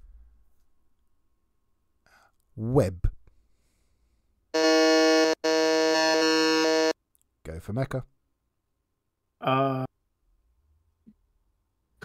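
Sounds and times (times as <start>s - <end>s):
electronic game-show buzzer: 4.6s - 7.0s.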